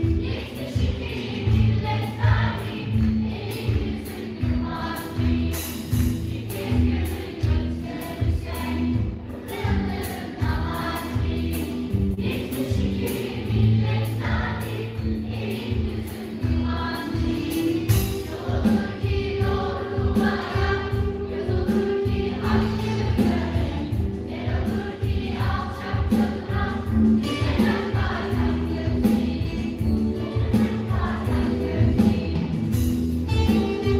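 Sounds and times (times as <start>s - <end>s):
live band bass line: 0.0s - 33.9s
mixed choir singing: 0.0s - 33.9s.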